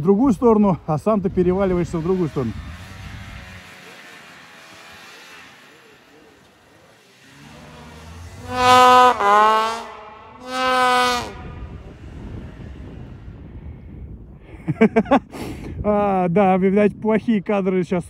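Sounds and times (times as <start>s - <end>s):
distant snowmobile engine: 0.0s - 15.2s
loud held pitched tones: 7.4s - 12.0s.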